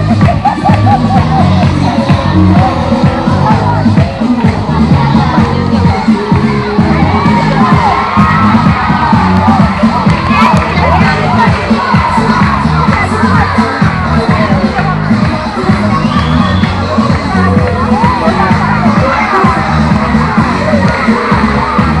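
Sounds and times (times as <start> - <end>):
children shouting and cheering: 0.0 - 22.0.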